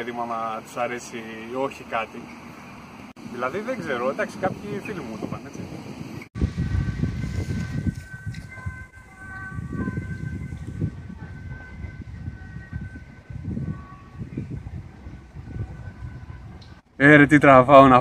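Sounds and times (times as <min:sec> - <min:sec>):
wind buffeting microphone: 0:02.8 - 0:18.0
faint steady high tones: 0:07.4 - 0:16.6.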